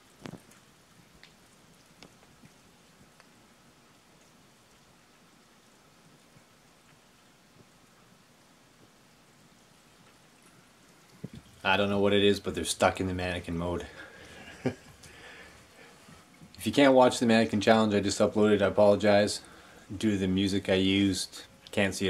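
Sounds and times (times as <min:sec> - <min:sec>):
soft ticks: 0:01.2 - 0:03.4.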